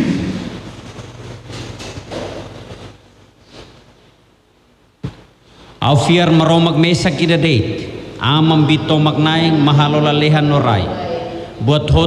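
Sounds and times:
crowd rustling and shuffling: 0.0s - 4.2s.

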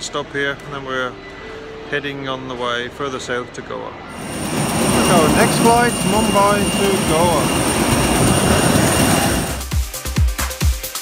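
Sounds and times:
jet aircraft roar: 4.1s - 9.7s.

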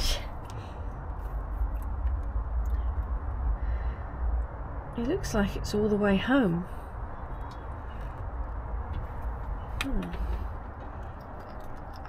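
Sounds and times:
steady low rumble: 0.0s - 12.0s
hands clicking and rustling: 8.9s - 12.0s.

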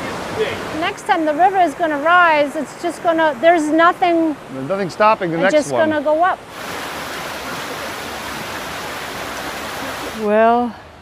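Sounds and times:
brook running over stones: 0.0s - 10.7s.

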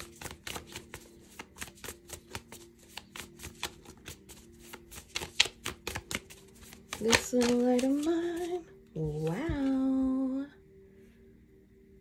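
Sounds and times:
cards being shuffled: 0.0s - 9.8s.

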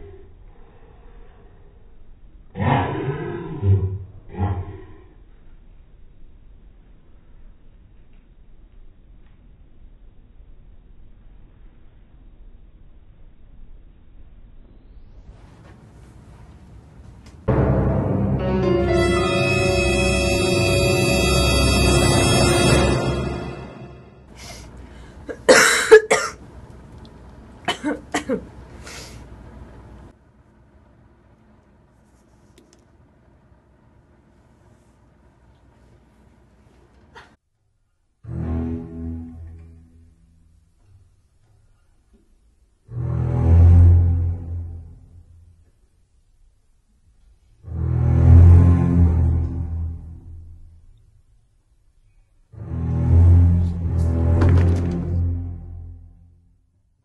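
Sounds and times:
person coughing: 25.3s - 26.4s, 27.7s - 28.6s.

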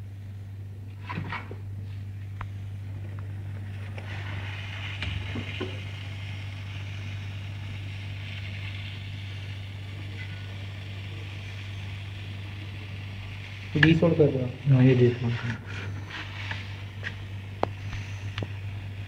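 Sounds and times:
low steady hum: 0.0s - 19.0s
hot air blowing hiss: 3.7s - 19.0s.

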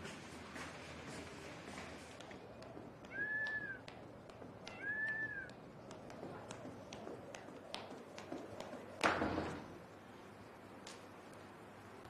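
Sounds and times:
faint ticks and taps: 2.2s - 8.9s
animal high calls: 4.6s - 5.5s.

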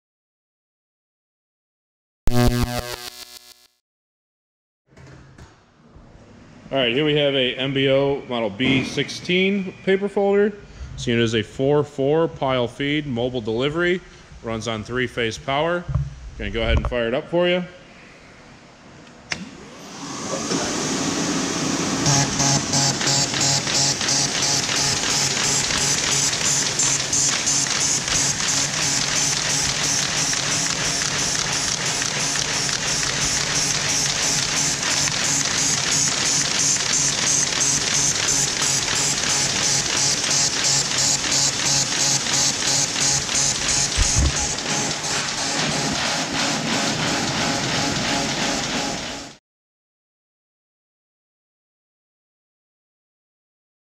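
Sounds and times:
paper folder machine clattering: 22.6s - 49.2s.

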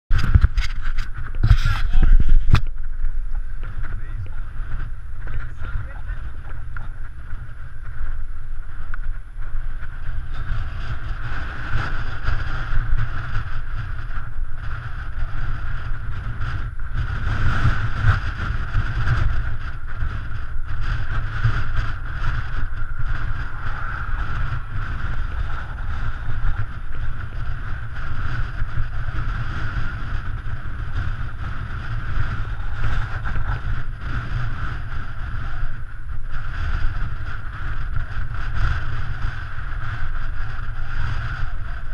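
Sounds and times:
bike whirring: 0.1s - 41.9s
wind buffeting microphone: 0.1s - 41.9s.

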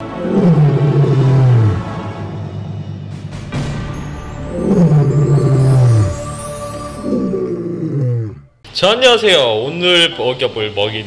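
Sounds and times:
lion roaring: 0.0s - 2.2s, 4.5s - 6.2s, 7.0s - 8.5s.

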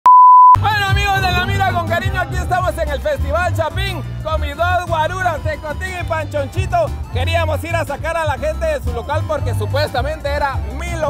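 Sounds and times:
test-tone beep: 0.0s - 0.6s
vocals over deep bass beat: 0.6s - 5.7s.

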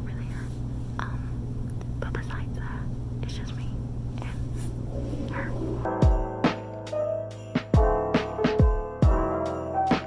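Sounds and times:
woman whispering: 0.0s - 1.4s, 2.0s - 4.6s, 5.2s - 5.7s
steady low hum: 0.0s - 6.2s.

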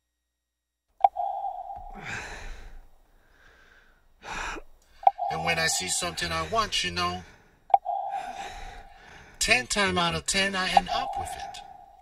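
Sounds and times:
steady tone: 1.0s - 2.6s, 5.0s - 6.9s, 7.7s - 9.3s, 10.7s - 12.0s.

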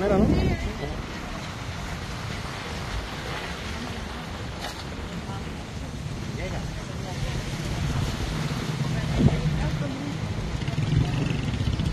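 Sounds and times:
car engine and tyres rumbling: 0.9s - 11.9s.

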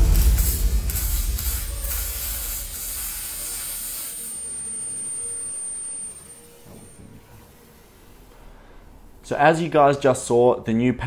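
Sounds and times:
music: 0.0s - 3.4s
welder crackling: 0.0s - 7.0s.

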